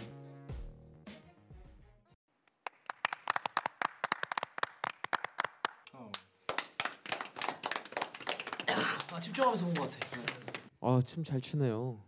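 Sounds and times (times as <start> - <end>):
small group clapping: 2.4 - 10.7.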